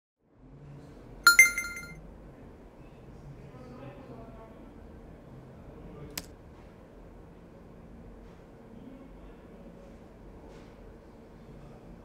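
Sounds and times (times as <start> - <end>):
two-note electronic chime: 1.3 - 1.9.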